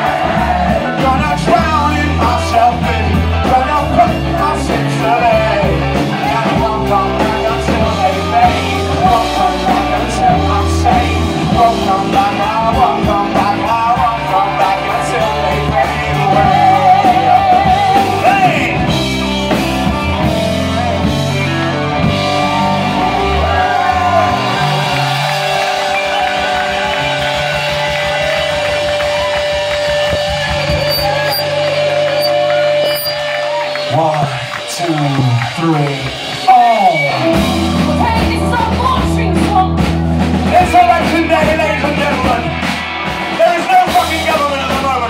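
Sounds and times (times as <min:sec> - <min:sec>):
live rock band playing: 0:00.0 - 0:45.0.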